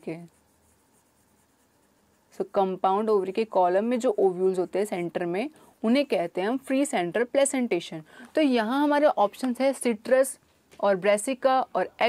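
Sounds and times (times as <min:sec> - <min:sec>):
woman's voice: 0:00.0 - 0:00.3, 0:02.4 - 0:12.0
stylus scratching on tablet: 0:00.0 - 0:07.5.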